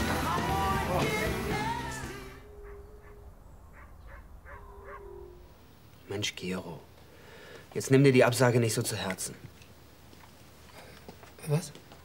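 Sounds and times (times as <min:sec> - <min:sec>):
long low animal calls: 0:02.4 - 0:05.7.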